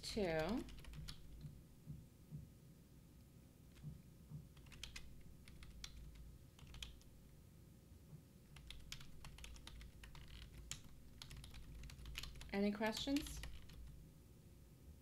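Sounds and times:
typing on computer keyboard: 0.2 - 1.5, 4.5 - 7.1, 8.5 - 14.0.

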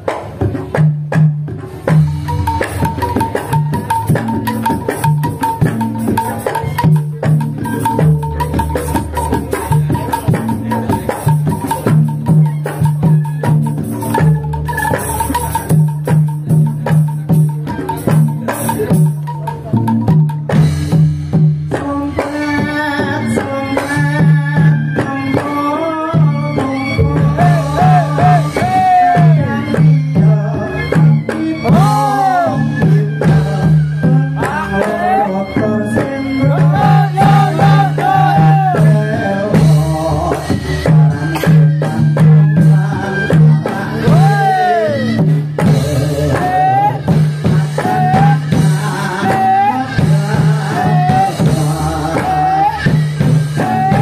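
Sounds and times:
hand drum strokes: 0.0 - 22.4.

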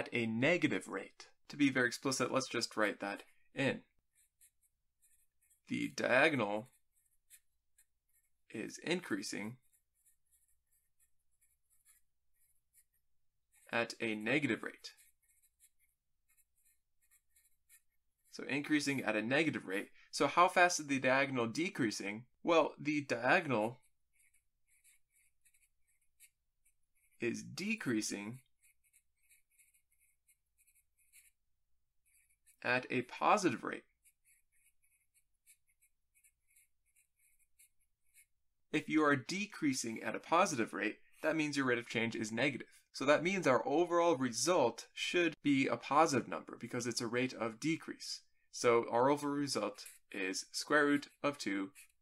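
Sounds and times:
marker scratching on paper: 4.0 - 19.9, 23.1 - 38.4, 50.7 - 52.0.

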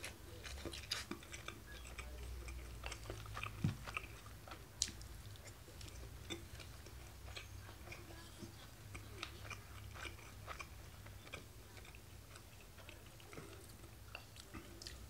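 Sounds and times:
low steady hum: 0.0 - 15.0
man chewing food: 0.0 - 15.0.

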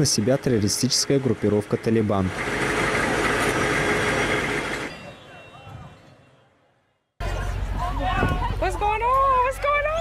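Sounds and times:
vehicle engines running: 0.0 - 5.7, 7.2 - 10.0.

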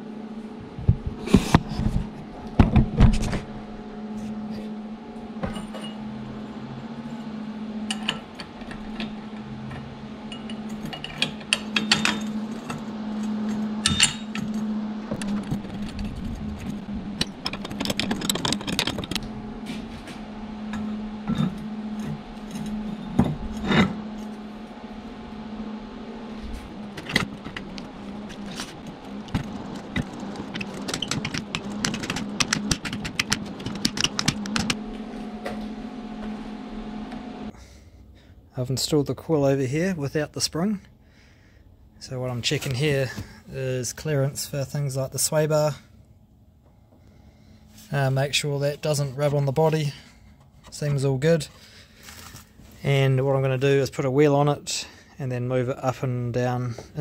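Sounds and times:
steady low hum: 0.0 - 57.0
metal clinks and knocks: 10.3 - 12.8, 13.8 - 14.6, 15.2 - 19.3.

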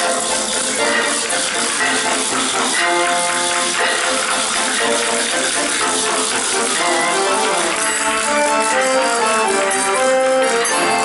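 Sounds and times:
hand percussion playing: 0.0 - 11.0
small jingling instruments: 0.0 - 11.0
sustained pitched melody: 0.0 - 11.0.

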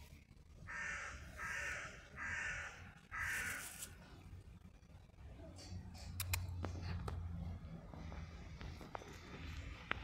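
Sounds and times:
crow cawing: 0.6 - 4.0.

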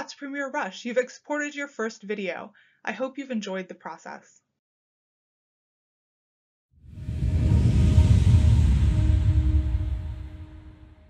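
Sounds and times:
deep rumbling logo sting: 6.8 - 11.0.

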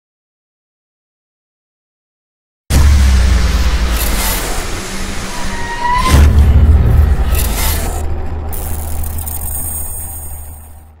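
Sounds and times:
deep steady rumble: 2.7 - 11.0.

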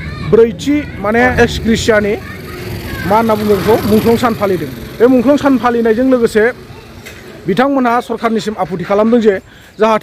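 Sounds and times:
man talking: 0.3 - 2.2, 3.0 - 6.6, 7.4 - 10.0.

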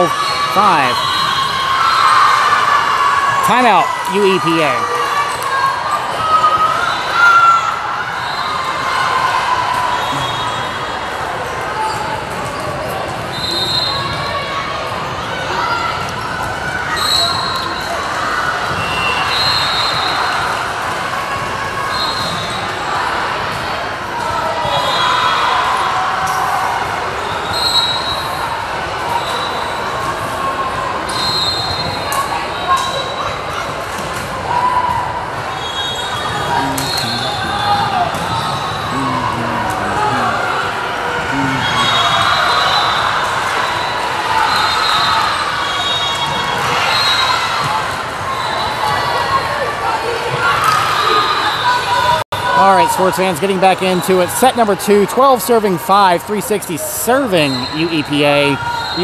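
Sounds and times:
many voices chattering: 0.0 - 31.2, 32.0 - 59.0.

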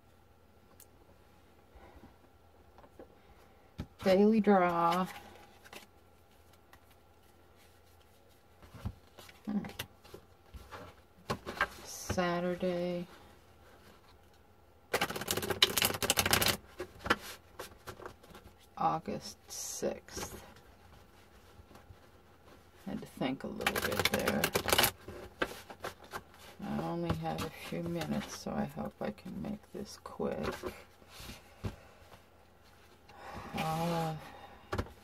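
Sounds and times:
cards being riffle-shuffled: 14.9 - 18.6, 21.0 - 28.4.

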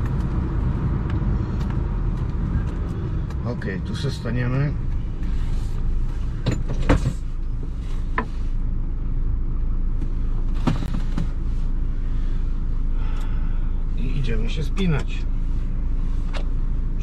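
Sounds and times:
diesel truck engine idling: 11.5 - 17.0.

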